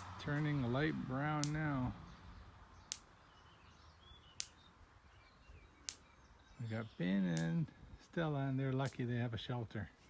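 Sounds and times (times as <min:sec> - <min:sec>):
sharp short clicks: 0:01.4 - 0:01.6, 0:02.9 - 0:03.1, 0:04.3 - 0:04.6, 0:05.8 - 0:06.1, 0:07.3 - 0:07.6
faint bird chirps: 0:02.0 - 0:07.8.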